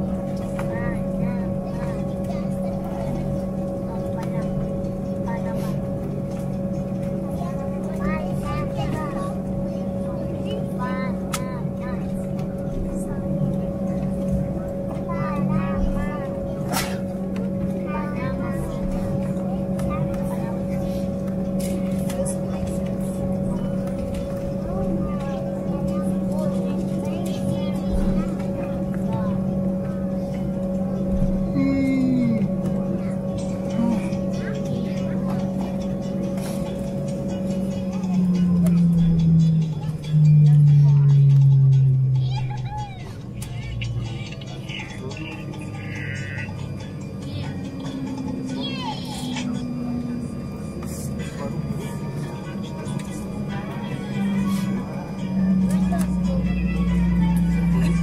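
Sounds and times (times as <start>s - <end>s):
cabin air system: 0.0s - 58.0s
jet engine drone: 0.0s - 58.0s
passenger voices murmuring: 0.0s - 58.0s.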